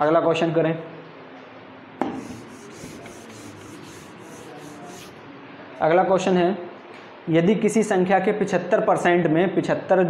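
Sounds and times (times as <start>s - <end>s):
rubbing strokes on whiteboard: 2.1s - 5.2s.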